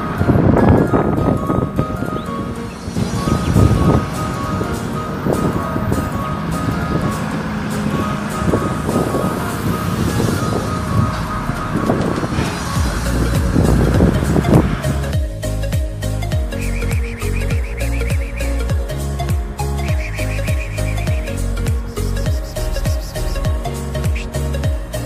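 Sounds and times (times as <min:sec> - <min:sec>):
background music: 0:00.0 - 0:25.0
boat engine: 0:00.0 - 0:25.0
wind: 0:00.0 - 0:25.0.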